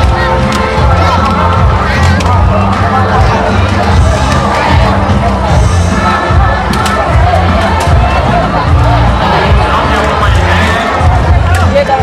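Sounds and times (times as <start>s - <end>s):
crowd cheering and shouting: 0.0s - 12.0s
loud music with heavy bass: 0.0s - 12.0s.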